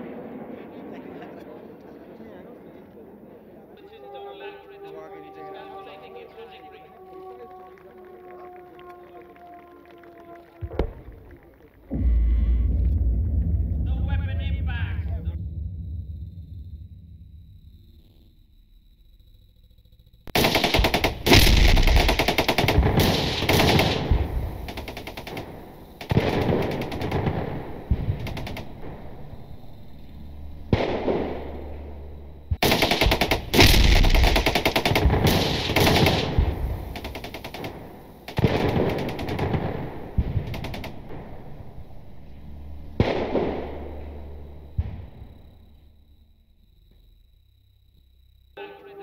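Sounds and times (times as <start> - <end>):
explosions: 0.0 - 3.8, 10.6 - 18.0, 20.3 - 45.8
rapid gunfire: 20.3 - 29.0, 32.6 - 41.3.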